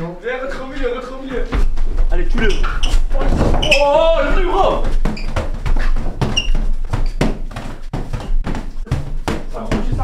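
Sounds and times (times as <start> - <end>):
knocks and thumps against a wall: 1.5 - 10.0.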